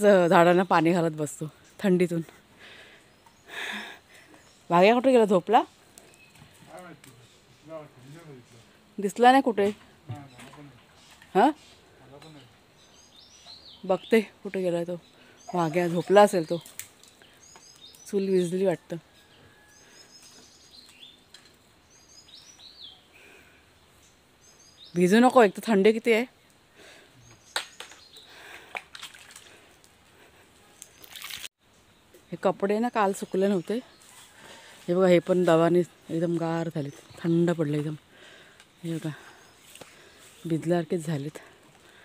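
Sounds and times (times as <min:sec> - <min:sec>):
birds chirping faintly: 0:00.0 - 0:42.0
outdoor background noise: 0:00.0 - 0:42.0.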